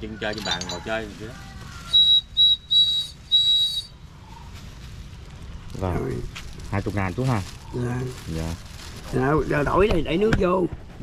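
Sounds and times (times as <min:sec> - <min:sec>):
ceramic bird whistle toots: 0:01.8 - 0:04.6.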